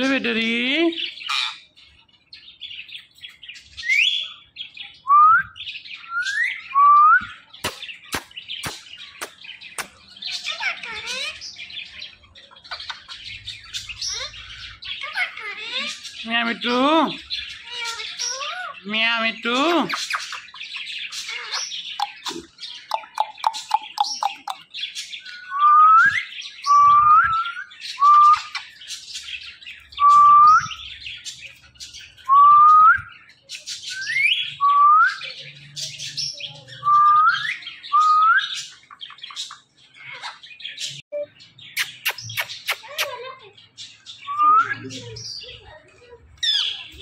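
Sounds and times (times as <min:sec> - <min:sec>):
parakeets chirping and chattering: 0:00.0 - 0:47.0.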